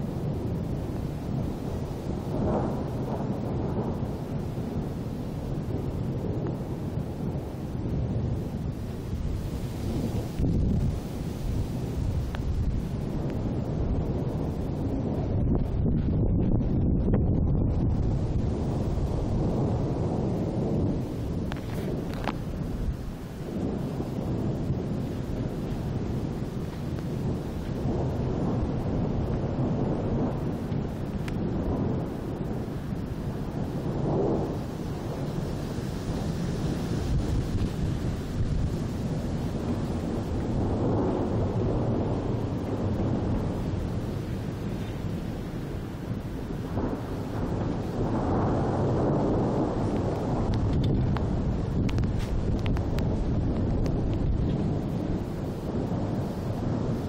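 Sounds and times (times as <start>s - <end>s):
rolling thunder: 0.0s - 57.0s.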